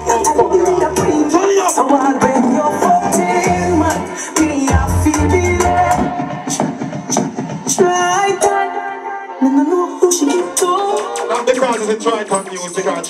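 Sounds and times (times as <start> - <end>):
loud music melody: 0.0 - 13.0
deep bass: 3.4 - 6.1.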